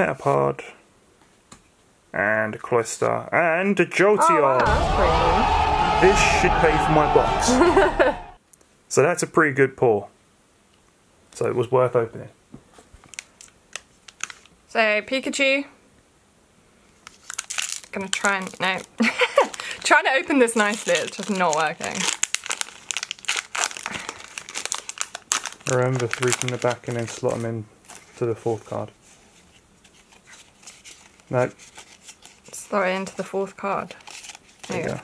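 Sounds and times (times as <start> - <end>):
person speaking: 4.1 - 5.0
trading cards rustling: 17.1 - 35.0.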